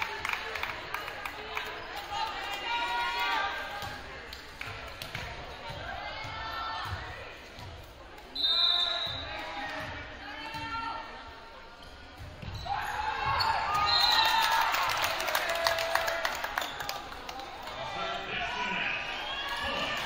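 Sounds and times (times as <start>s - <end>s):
referee's whistle blast: 8.4s - 9.3s.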